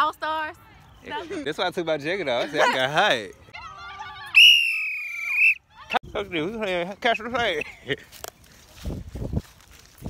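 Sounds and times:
sports whistle blast: 4.4s - 5.6s.

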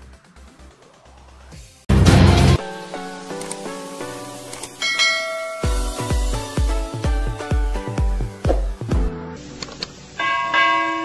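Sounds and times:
music beat: 0.0s - 9.2s
bright bell chime: 4.8s - 5.9s, 10.2s - 11.0s.

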